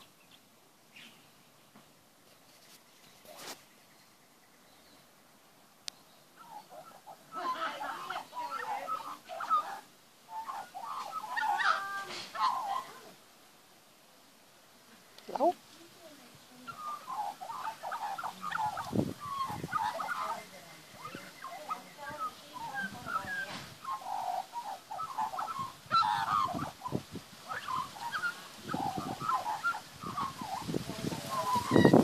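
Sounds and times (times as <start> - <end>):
magpie warbling song: 16.7 - 32.0.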